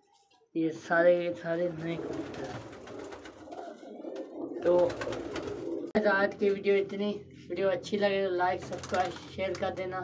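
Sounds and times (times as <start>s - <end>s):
pigeons cooing: 1.7s - 6.0s.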